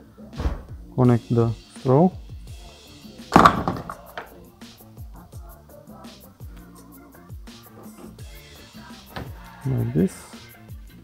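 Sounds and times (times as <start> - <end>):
background music: 0.0 - 11.0
aerosol can knock: 3.4 - 4.3.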